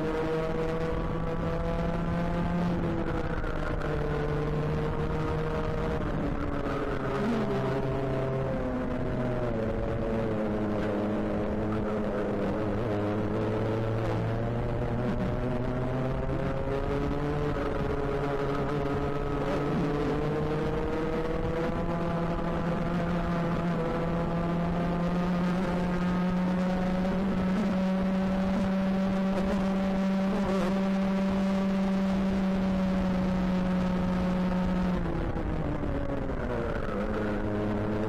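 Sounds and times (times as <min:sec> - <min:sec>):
kart engine revving: 0:00.1 - 0:38.0.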